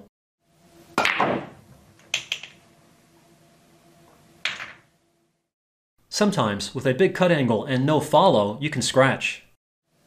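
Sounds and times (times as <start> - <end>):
cue ball clack: 1.0 - 2.6
pool balls clicking together: 1.0 - 2.6.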